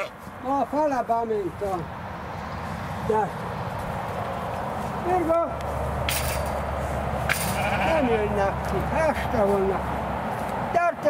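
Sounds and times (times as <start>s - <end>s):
sheep bleating: 7.5s - 8.4s.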